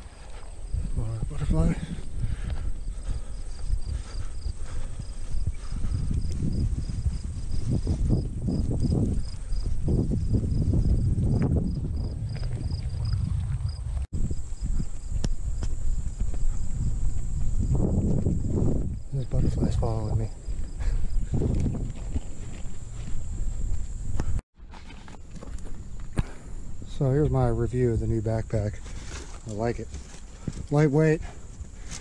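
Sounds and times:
footsteps on grass: 0.0s - 12.4s, 13.9s - 26.8s, 28.5s - 32.0s
high pulsing insect call: 0.0s - 24.4s
low rumbling on microphone: 0.0s - 24.4s.

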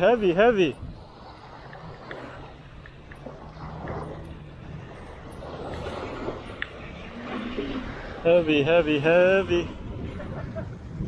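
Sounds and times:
surf: 0.0s - 11.0s
wind: 0.0s - 11.0s.

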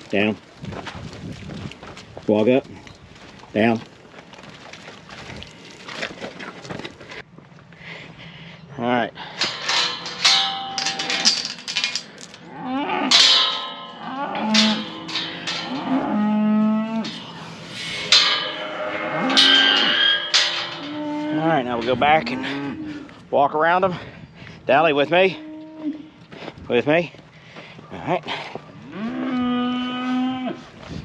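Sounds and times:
cows mooing: 12.4s - 23.1s, 28.8s - 30.6s.

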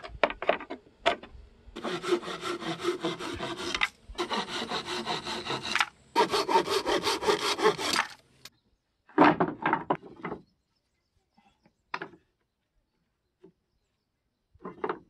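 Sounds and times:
hand saw cutting wood: 1.8s - 8.3s.

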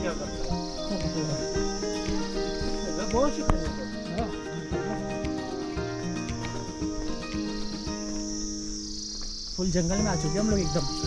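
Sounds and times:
background music: 0.0s - 11.0s
crickets chirring: 0.0s - 11.0s.

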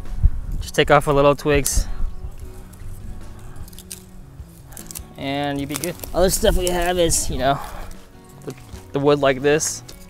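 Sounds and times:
background music: 0.0s - 10.0s
dry twigs snapping: 1.4s - 10.0s.

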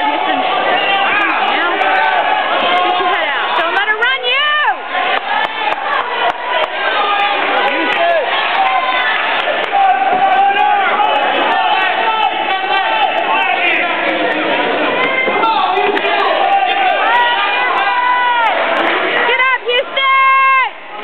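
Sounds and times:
spectators shouting and cheering: 0.0s - 21.0s.

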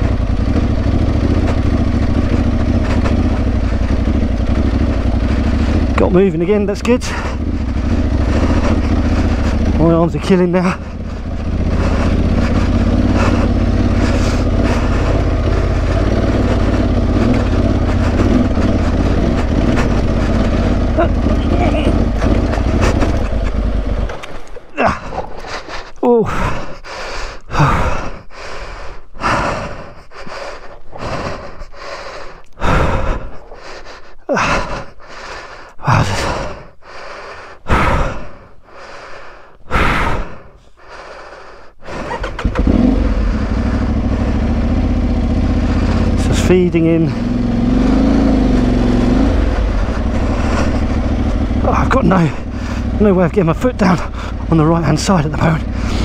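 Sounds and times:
motorcycle engine running: 0.0s - 26.8s, 42.0s - 56.0s
person panting heavily: 0.0s - 56.0s.

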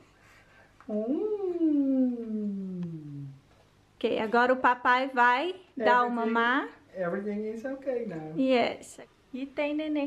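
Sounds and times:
man humming a sliding note: 0.9s - 3.4s.

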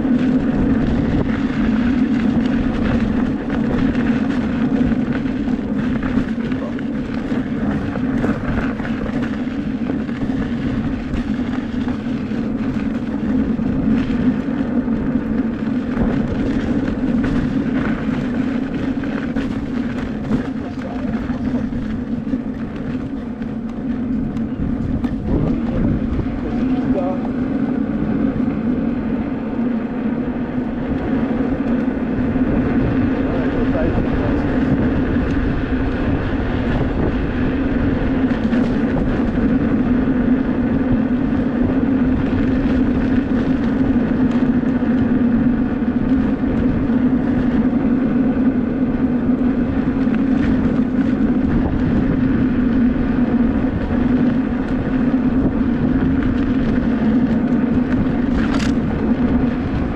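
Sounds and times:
constant low hum: 0.0s - 59.9s
wind rushing over microphone: 0.0s - 59.9s.

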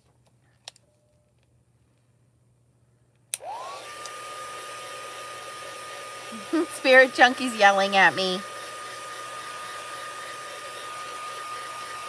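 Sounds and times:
heat tool fan whine: 3.3s - 12.0s.

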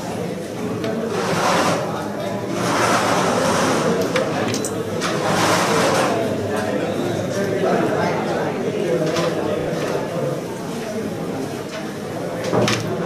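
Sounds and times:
murmur of voices in a hall: 0.0s - 13.0s.

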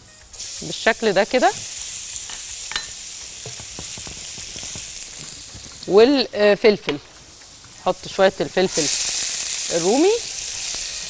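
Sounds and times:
garlic sizzling in oil: 0.2s - 11.0s.

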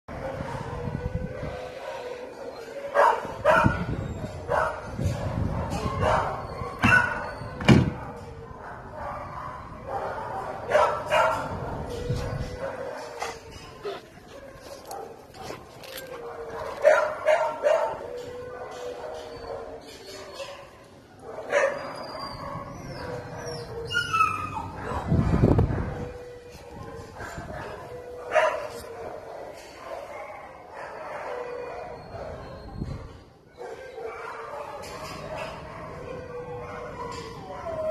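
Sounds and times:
dogs barking: 0.1s - 32.7s, 33.5s - 37.9s.

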